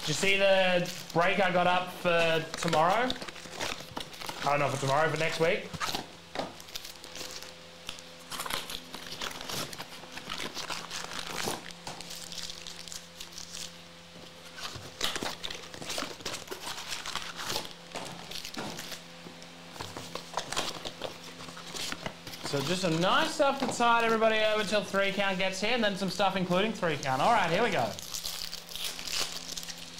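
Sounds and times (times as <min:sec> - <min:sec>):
faint steady hum: 0:00.0 - 0:29.9
foil packs crinkling: 0:00.0 - 0:29.9.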